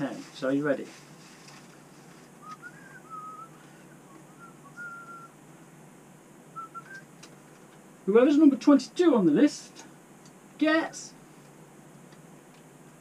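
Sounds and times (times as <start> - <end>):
person whistling a tune: 2.4 - 5.3, 6.6 - 7.1.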